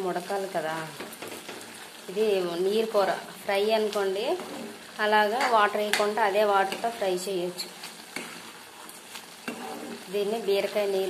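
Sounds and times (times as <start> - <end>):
curry sizzling: 0.0 - 11.0
spatula stirring curry in a pan: 0.5 - 2.2, 3.7 - 11.0.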